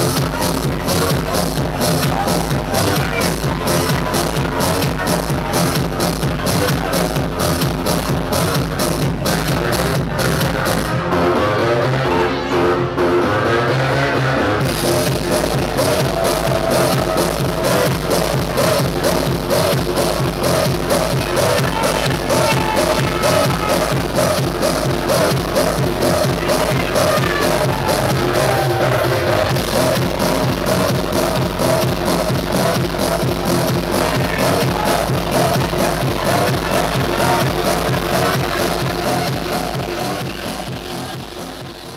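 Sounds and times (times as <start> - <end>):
electronic dance music: 0.0 - 41.9.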